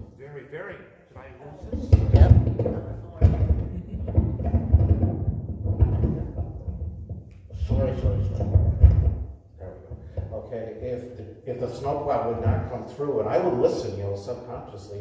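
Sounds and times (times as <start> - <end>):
microphone handling rumble and thuds: 1.7 - 11.0.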